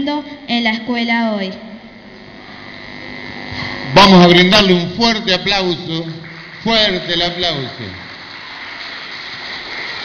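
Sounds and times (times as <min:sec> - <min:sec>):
children applauding: 0:05.5 - 0:10.0.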